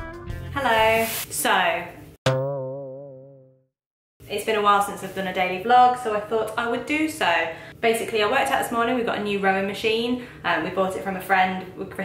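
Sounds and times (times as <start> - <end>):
low twanging boing: 2.3 - 3.7.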